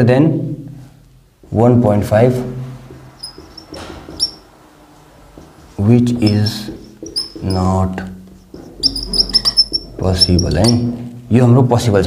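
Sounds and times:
marker squeaking on whiteboard: 3.0s - 4.6s, 5.3s - 11.0s.

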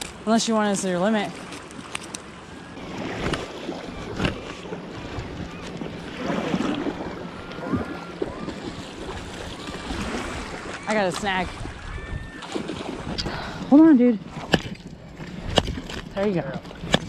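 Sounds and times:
wind buffeting microphone: 2.8s - 17.0s.

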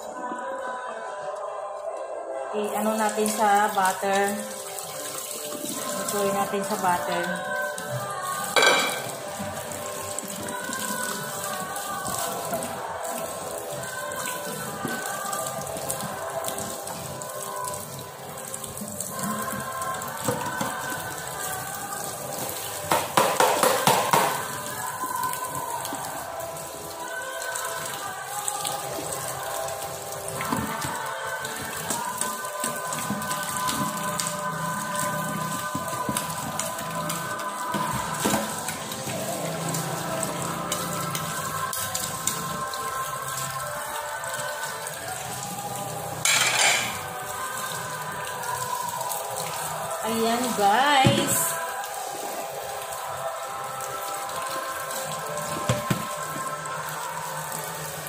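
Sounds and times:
background music: 0.0s - 58.0s
tap running into metal sink: 8.5s - 9.6s, 22.4s - 24.6s, 35.5s - 39.3s, 46.2s - 47.1s, 55.5s - 56.5s
dishes clattering: 8.6s - 9.2s, 46.2s - 47.1s.

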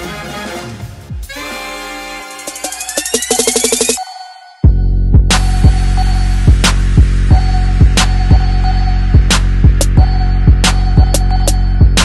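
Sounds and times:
electronic music bass drone: 2.2s - 12.0s.

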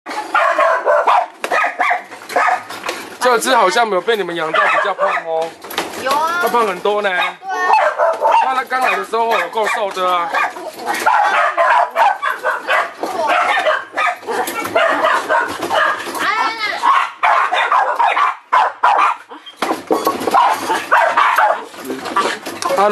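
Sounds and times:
dog barking: 0.1s - 2.8s, 4.4s - 5.4s, 7.2s - 16.1s, 16.8s - 19.4s, 20.3s - 22.3s.

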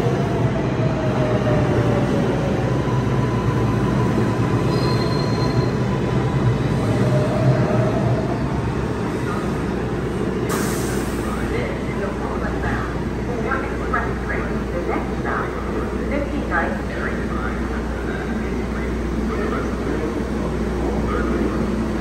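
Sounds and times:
train car low hum: 0.0s - 22.0s
air hiss: 10.5s - 11.3s.

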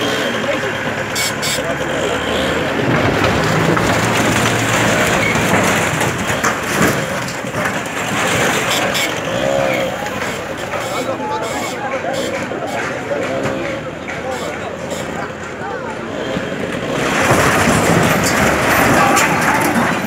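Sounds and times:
background voices: 0.0s - 20.0s
diesel engine under load: 0.0s - 20.0s
sharp knocks of breaking debris: 2.7s - 9.4s, 16.8s - 20.0s.

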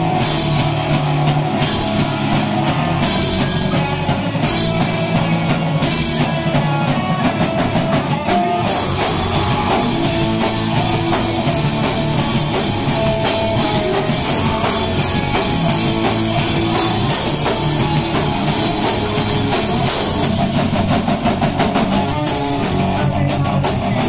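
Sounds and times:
live rock band playing: 0.0s - 24.0s.

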